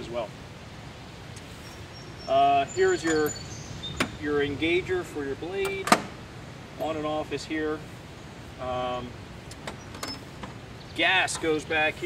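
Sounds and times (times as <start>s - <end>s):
tractor seat clicking on pivot: 5.6s - 6.2s, 9.5s - 10.6s.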